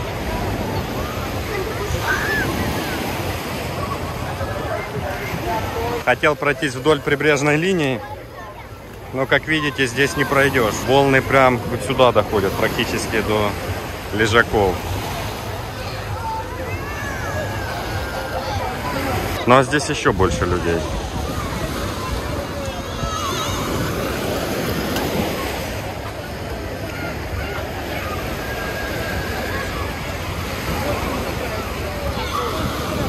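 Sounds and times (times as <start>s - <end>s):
crowd talking: 0.0s - 33.0s
small waves breaking on sand: 0.0s - 33.0s.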